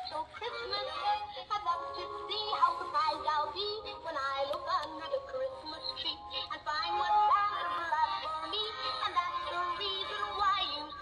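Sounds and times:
toy singing a bouncy tune: 0.0 - 11.0.

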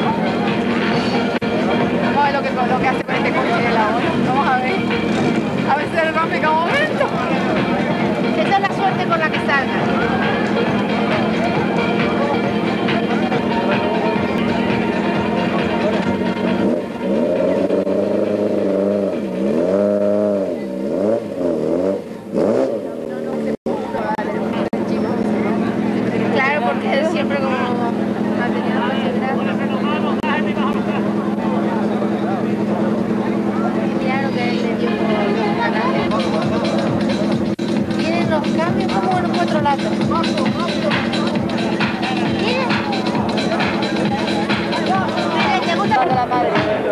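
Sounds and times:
car engine revving: 0.0 - 46.9.

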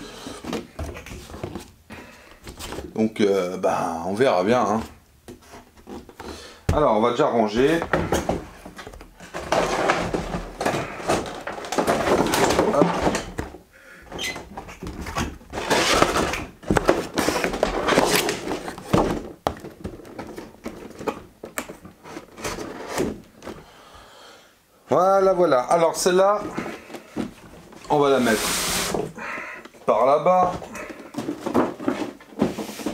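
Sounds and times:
cardboard rustling: 0.0 - 1.8, 4.5 - 13.6, 14.4 - 23.7, 25.1 - 29.2, 29.8 - 32.9
cardboard boxes rubbing and sliding: 28.0 - 29.2, 31.4 - 32.9.

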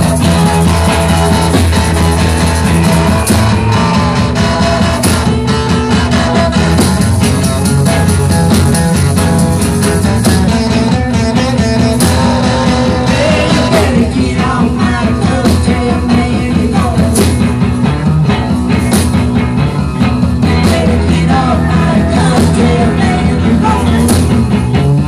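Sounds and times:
live rock band playing: 0.0 - 25.0.

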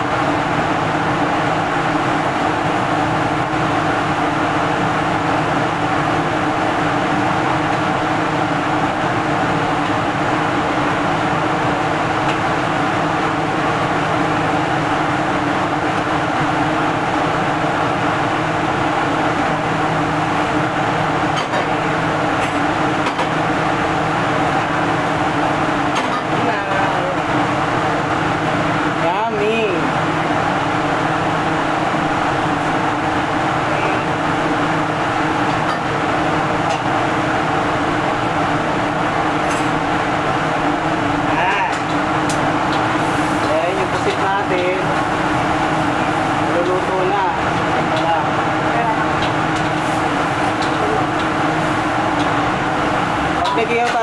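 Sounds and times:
exhaust hood fan running: 0.0 - 54.0
gas wok burner roaring: 0.0 - 54.0.

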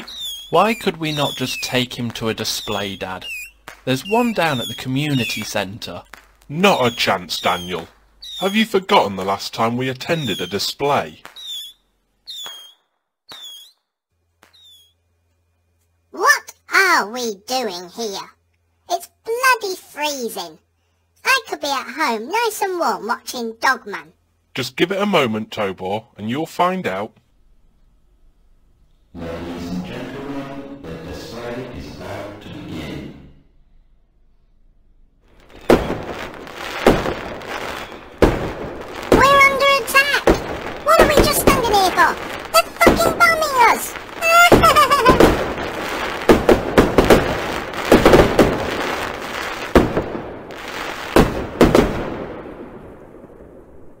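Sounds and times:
voices calling out: 0.0 - 11.7, 29.1 - 33.4, 35.4 - 49.4
fireworks popping: 0.0 - 13.8, 14.4 - 14.9, 35.3 - 54.0
firework whistle: 0.0 - 15.0, 35.4 - 49.9.

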